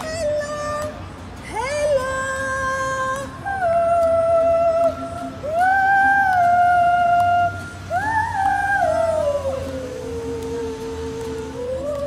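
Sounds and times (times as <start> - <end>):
person singing a long wordless note: 1.6 - 12.0.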